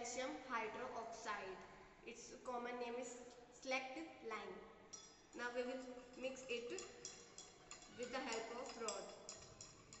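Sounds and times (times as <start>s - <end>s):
stirring rod clinking on beaker: 4.9s - 10.0s.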